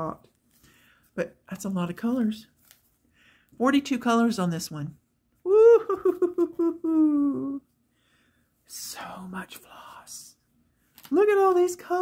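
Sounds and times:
woman's whispered exclamation: 0:08.7 - 0:10.4.

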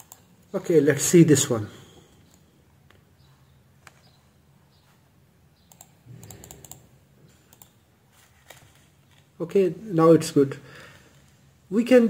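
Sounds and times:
faint computer clicking: 0:00.0 - 0:00.5, 0:05.6 - 0:07.8.

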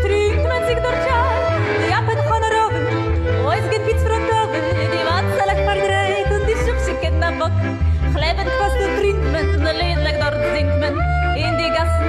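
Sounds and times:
woman singing with vibrato: 0:00.0 - 0:02.8, 0:03.4 - 0:12.0
pulsing bass accompaniment: 0:00.0 - 0:12.0.

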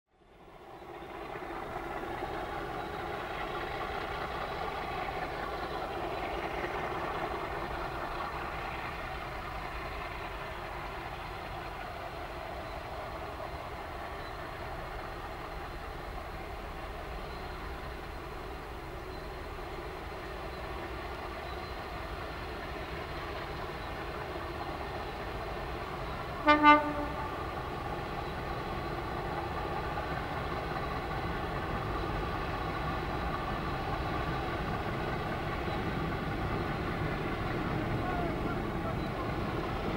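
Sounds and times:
distant diesel locomotive engines droning: 0:00.1 - 0:39.9.

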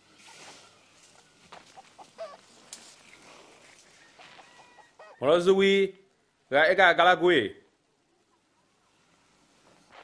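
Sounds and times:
chickens clucking softly: 0:00.0 - 0:05.6, 0:07.9 - 0:09.2.

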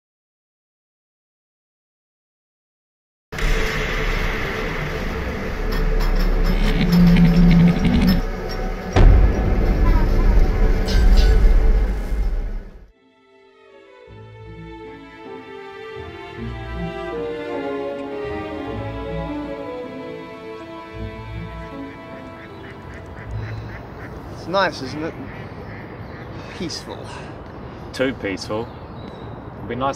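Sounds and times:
deep rumble and rushing noise: 0:03.4 - 0:12.9
ducks quacking: 0:20.3 - 0:27.4.

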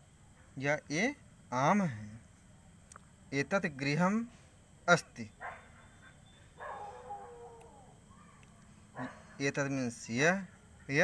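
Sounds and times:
faint animal cry: 0:05.4 - 0:09.5.

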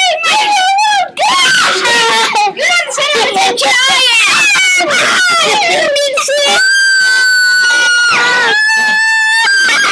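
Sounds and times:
child screaming: 0:00.0 - 0:09.9.

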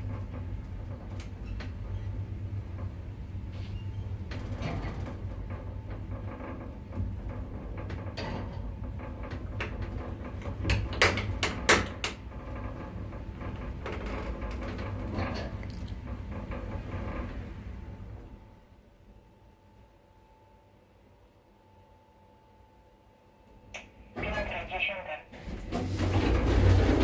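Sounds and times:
lift clicks and knocks: 0:09.4 - 0:12.3
lift humming: 0:12.2 - 0:27.0.

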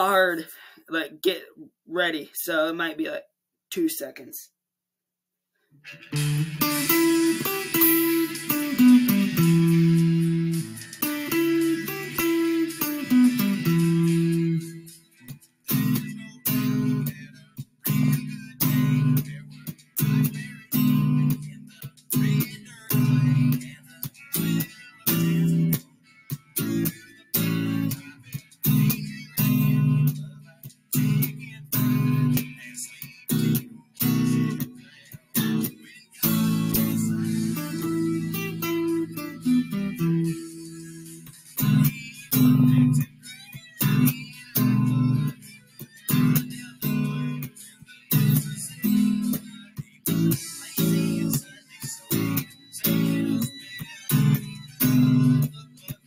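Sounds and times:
electric guitar country chords: 0:05.8 - 0:56.0.

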